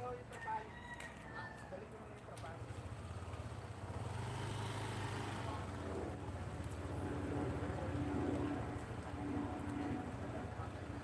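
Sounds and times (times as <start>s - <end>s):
engine pulsing hum: 5.5s - 11.0s.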